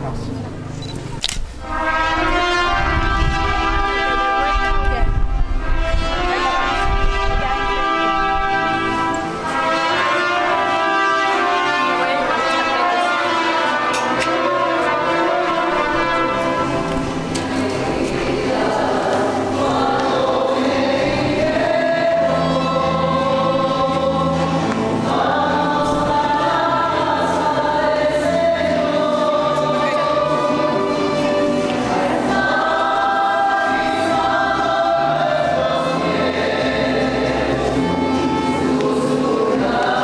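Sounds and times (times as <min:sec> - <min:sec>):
choir singing a sacred song: 0:01.6 - 0:40.0.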